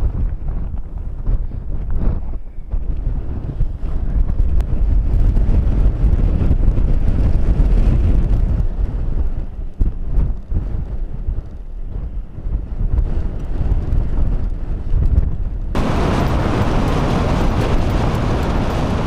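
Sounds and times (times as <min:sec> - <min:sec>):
strong wind buffeting microphone: 0:00.0 - 0:19.0.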